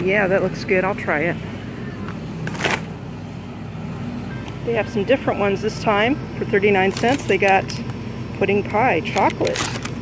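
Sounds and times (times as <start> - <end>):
steady low hum: 0.0 - 10.0
plastic bag crinkling: 6.8 - 7.8, 9.1 - 10.0.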